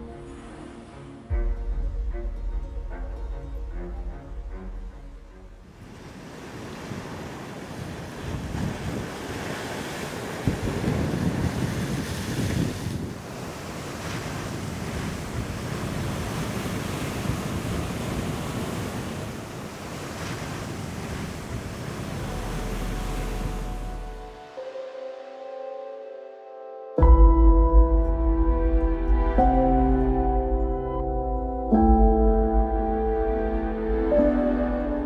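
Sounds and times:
ocean waves washing: 0.0 - 26.8, 27.9 - 35.0
wind on microphone: 5.6 - 24.5.

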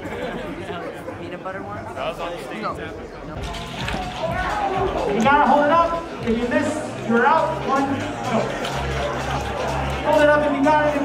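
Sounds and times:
crowd voices in a hall: 0.0 - 11.0.

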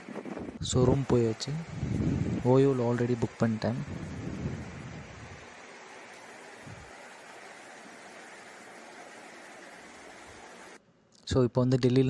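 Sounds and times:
rushing hiss of room noise: 1.0 - 10.8.

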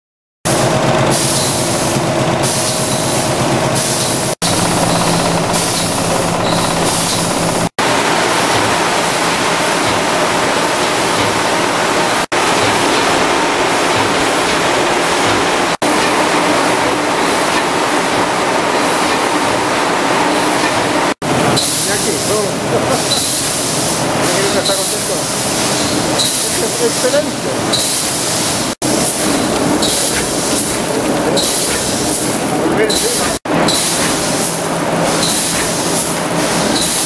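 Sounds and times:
machinery rush and hum: 0.5 - 37.0.

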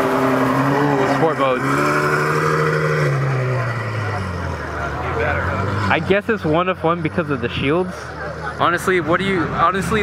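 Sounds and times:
car engine pulling away: 0.0 - 10.0.

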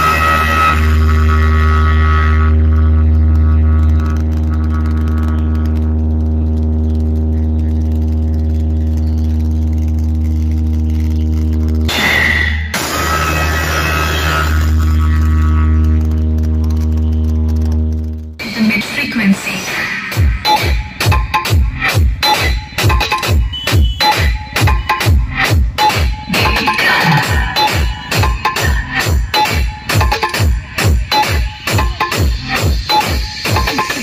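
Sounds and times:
deep bass drone from speakers: 0.0 - 34.0.

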